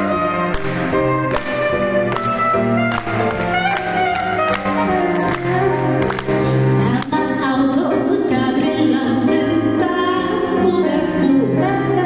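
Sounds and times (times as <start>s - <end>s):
clarinet: 0.0s - 6.2s
piano notes: 0.0s - 12.0s.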